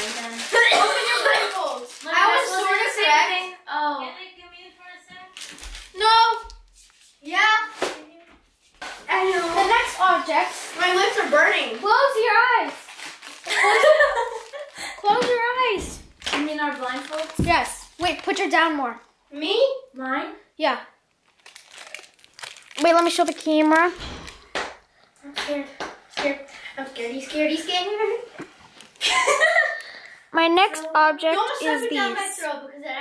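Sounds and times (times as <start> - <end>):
plastic packaging crinkling: 0.0 - 3.0, 5.3 - 6.1, 12.6 - 15.1, 16.1 - 18.7, 21.1 - 24.9, 28.4 - 29.9
girls' breathy exhale: 14.7 - 15.1, 29.7 - 30.3
person speaking: 22.7 - 24.0.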